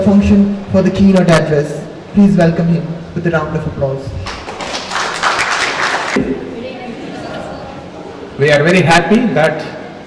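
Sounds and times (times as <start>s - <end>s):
audience applauding: 4.2s - 6.2s.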